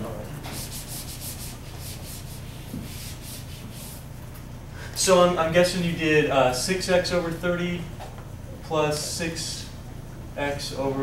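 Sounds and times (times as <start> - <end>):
eraser rubbing on whiteboard: 0.4 - 4.1.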